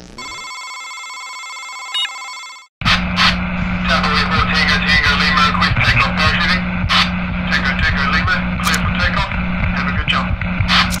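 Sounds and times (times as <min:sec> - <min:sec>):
loud radio static: 0:02.8 - 0:11.0
steady hum: 0:02.8 - 0:11.0
crackling clicks: 0:10.4 - 0:11.0.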